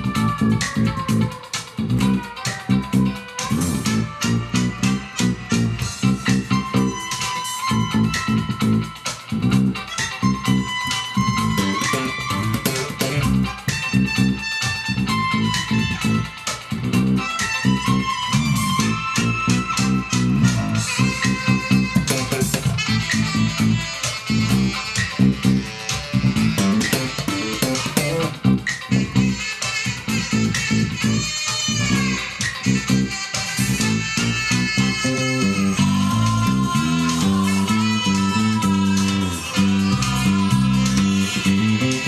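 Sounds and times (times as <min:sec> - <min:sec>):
electric bass guitar fingerstyle: 0:00.0 - 0:42.0
pop band with drums: 0:00.0 - 0:42.0.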